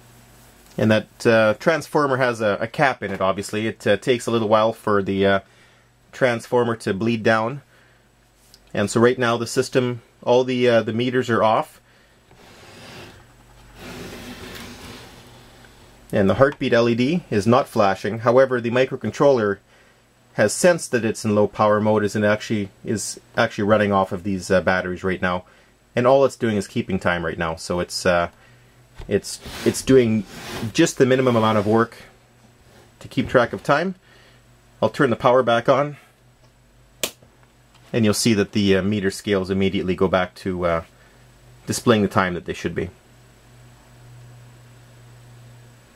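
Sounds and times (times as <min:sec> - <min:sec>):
faint room hum: 0:00.0 - 0:45.9
wooden box rubbing and sliding: 0:12.3 - 0:15.6, 0:29.3 - 0:32.0
sharp switch click: 0:37.0 - 0:37.2.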